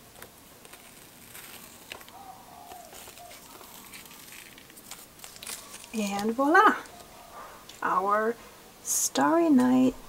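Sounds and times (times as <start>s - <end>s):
tape peeling off paper: 0.0s - 7.1s.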